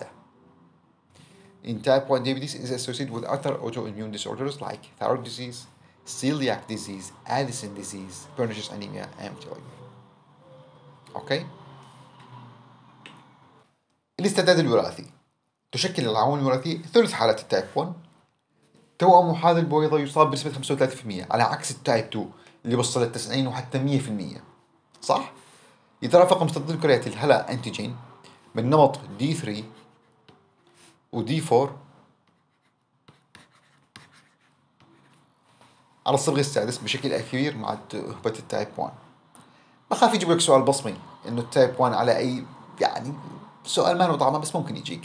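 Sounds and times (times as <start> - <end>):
stylus strokes on a tablet: 4.5 - 13.7, 26.2 - 31.1, 31.7 - 38.8.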